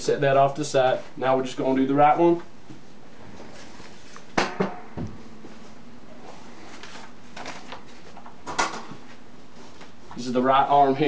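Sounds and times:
soft bump: 0:04.4 - 0:05.6.

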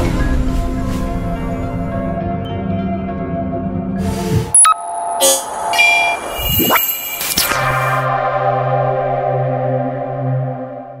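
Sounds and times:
held synthesizer chord: 0:08.0 - 0:11.0.

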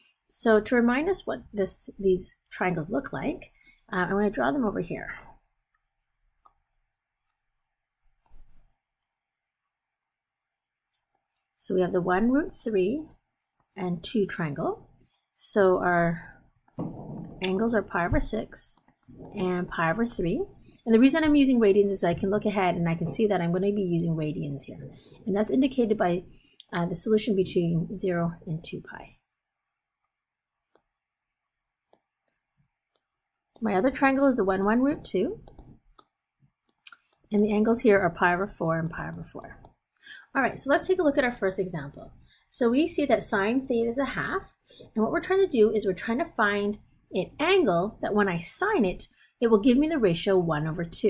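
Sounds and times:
stylus tapping on a tablet: 0:16.8 - 0:17.4
soft dull bump: 0:16.8 - 0:18.3
stylus tapping on tablet screen: 0:16.8 - 0:19.6.

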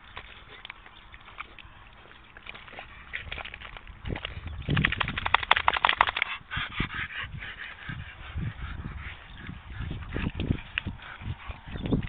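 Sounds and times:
mud squelching and slapping: 0:00.0 - 0:12.0.

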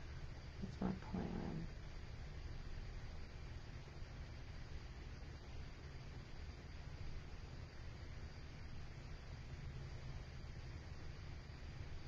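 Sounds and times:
low background hum: 0:00.0 - 0:12.0
woman speaking: 0:00.6 - 0:01.7.

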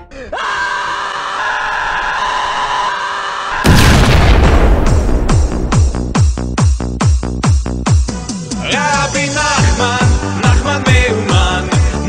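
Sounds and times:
man screaming: 0:00.0 - 0:03.6.

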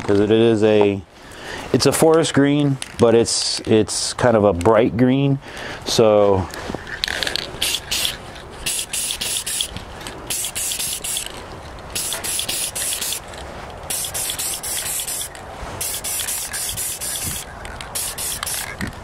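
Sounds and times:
spray paint can hissing: 0:07.6 - 0:09.7, 0:10.3 - 0:11.3, 0:11.9 - 0:13.2, 0:13.9 - 0:18.8.

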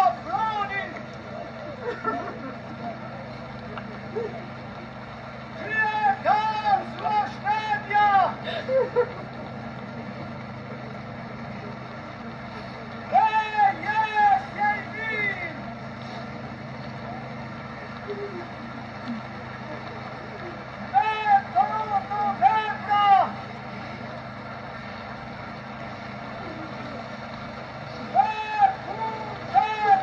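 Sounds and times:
steady low hum: 0:00.0 - 0:30.0
man wailing a lament: 0:05.6 - 0:08.6, 0:13.1 - 0:15.6, 0:20.9 - 0:23.4, 0:28.1 - 0:30.0.

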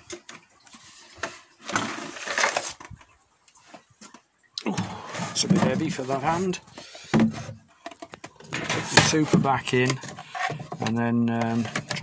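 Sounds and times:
scraping rustle: 0:00.6 - 0:04.3, 0:04.9 - 0:12.0.

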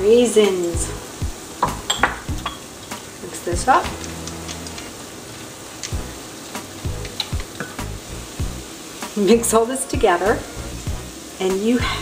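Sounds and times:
utensils tapping a frying pan: 0:01.6 - 0:03.2.

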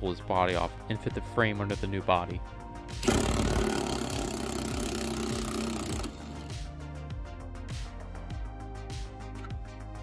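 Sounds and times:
impact wrench running: 0:03.0 - 0:06.6.

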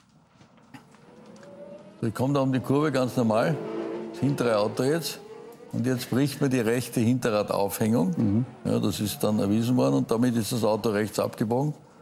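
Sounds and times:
racing car engine whine: 0:00.9 - 0:12.0.

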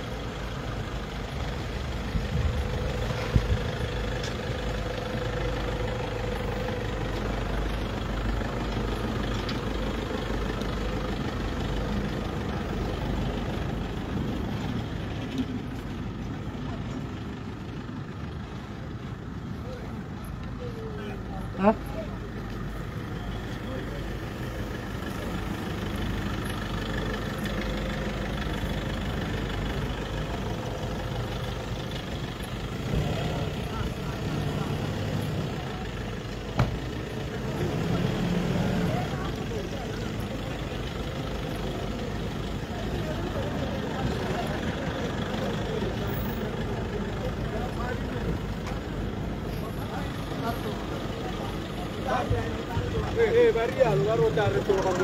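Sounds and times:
truck engines running: 0:00.0 - 0:55.0
murmur of voices: 0:10.0 - 0:55.0.

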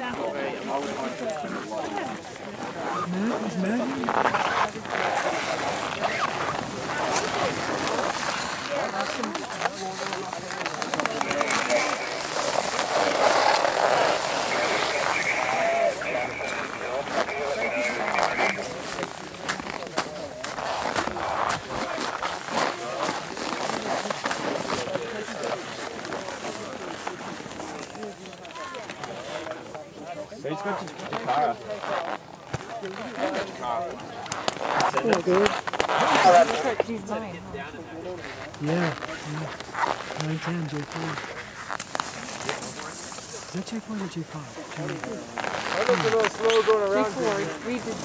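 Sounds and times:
people talking and calling out: 0:00.0 - 0:48.0.

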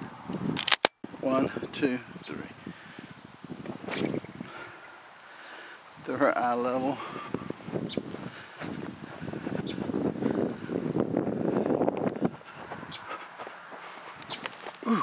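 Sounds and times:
wind on microphone: 0:00.0 - 0:05.0, 0:05.9 - 0:15.0
footsteps: 0:07.4 - 0:10.6, 0:11.9 - 0:15.0.

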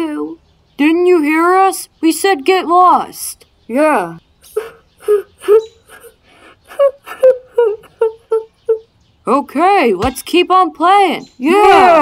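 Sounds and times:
person laughing mockingly: 0:04.5 - 0:08.8.

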